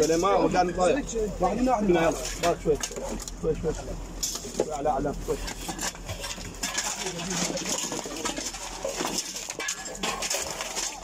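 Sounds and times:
rubble clinking and clattering: 1.4s - 11.0s.

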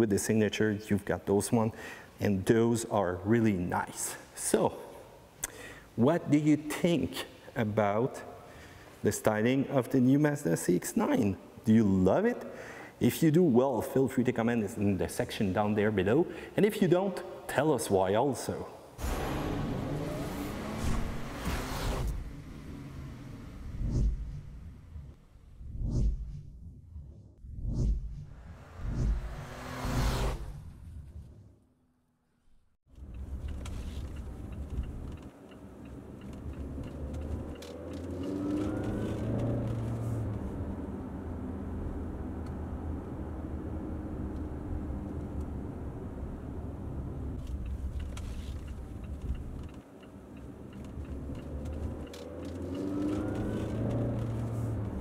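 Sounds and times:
deep hit: 19.0s - 22.5s
car engine rumble while driving: 19.0s - 25.6s, 28.2s - 31.3s, 32.9s - 55.0s
rushing whoosh: 19.0s - 31.4s
low rumble: 22.0s - 31.6s.

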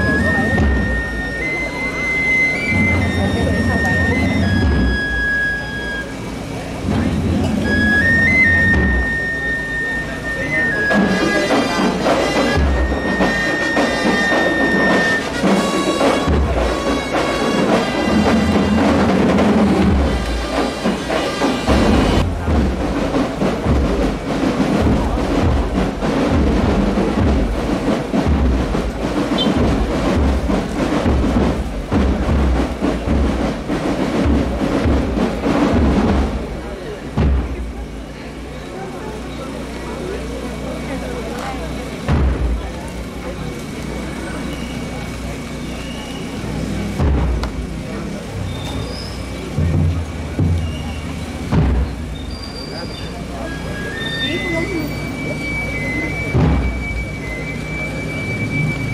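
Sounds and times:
brass band march: 0.0s - 38.1s, 40.4s - 58.9s
crowd chattering: 0.0s - 58.9s
bass drum beats: 15.4s - 38.1s, 42.0s - 43.1s, 46.6s - 48.2s, 49.6s - 52.3s.

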